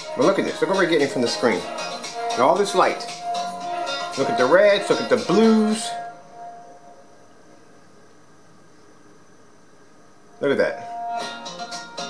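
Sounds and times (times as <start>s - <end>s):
projector cooling fan humming: 0.0s - 12.0s.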